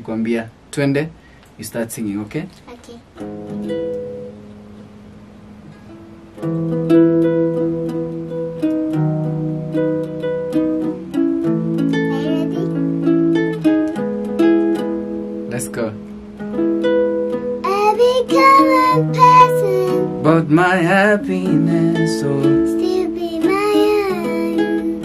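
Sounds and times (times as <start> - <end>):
acoustic guitar picking chords: 3.1 - 25.0
person singing: 17.6 - 25.0.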